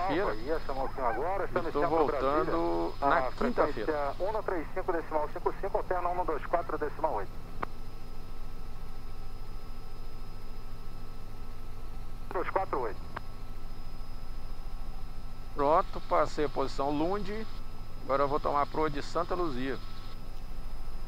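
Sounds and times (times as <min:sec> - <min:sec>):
man talking: 0:00.0 - 0:07.3, 0:12.3 - 0:13.0, 0:18.0 - 0:19.8
helicopter cabin drone: 0:00.0 - 0:21.0.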